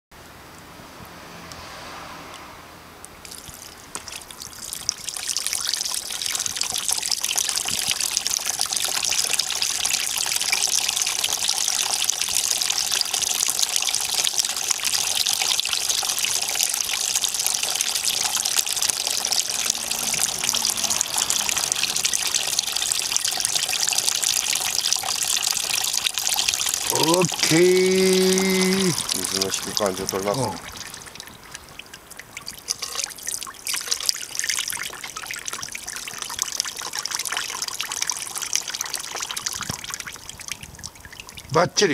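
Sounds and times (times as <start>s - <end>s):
water streams splashing into tub: 3.2s - 41.5s.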